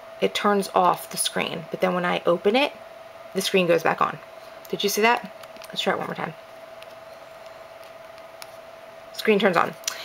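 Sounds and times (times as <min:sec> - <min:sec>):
faint constant hum: 0:00.0 - 0:10.0.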